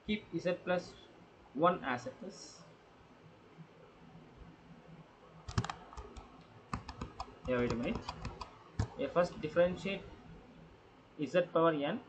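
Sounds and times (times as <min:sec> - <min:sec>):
sharp clicks: 0:05.5 - 0:09.0.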